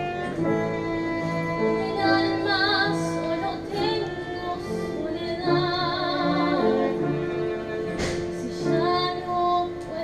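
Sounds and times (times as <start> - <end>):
violin accompaniment: 0.0 - 10.0.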